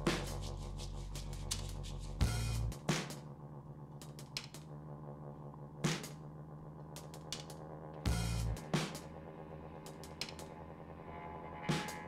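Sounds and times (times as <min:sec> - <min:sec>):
sustained low notes: 0:00.0 - 0:12.0.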